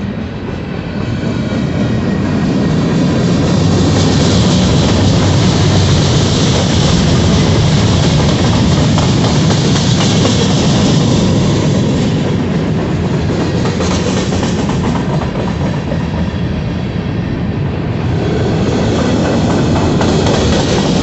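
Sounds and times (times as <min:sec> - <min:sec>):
train wheels running on rails: 0:00.0 - 0:21.0.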